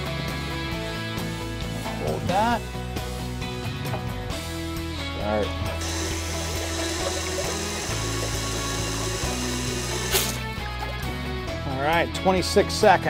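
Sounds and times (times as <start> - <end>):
background music with bass: 0.0 - 13.0
water pouring into plastic bucket: 5.8 - 11.1.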